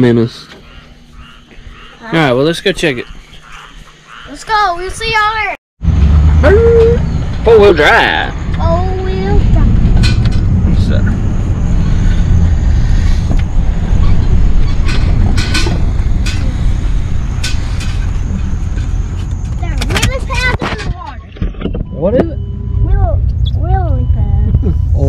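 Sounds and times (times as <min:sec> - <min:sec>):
vehicle rumble from inside cabin: 0:05.9 - 0:25.0.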